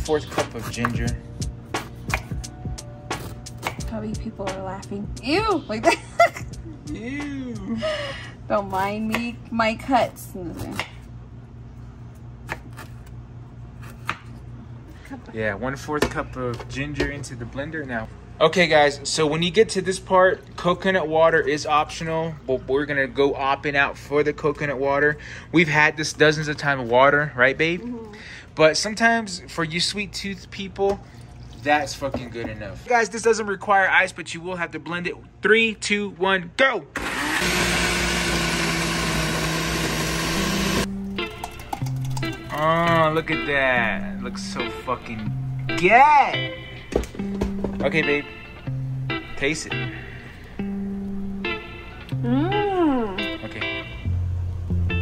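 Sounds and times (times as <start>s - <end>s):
knife cutting on wooden board: 0.0s - 1.2s
steady low hum: 0.0s - 37.6s, 46.4s - 55.0s
blender motor running: 37.0s - 40.9s.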